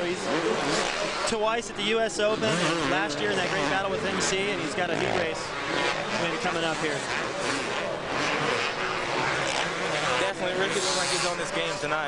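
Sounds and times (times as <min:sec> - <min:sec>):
racing motorcycle engines: 0:00.0 - 0:12.0.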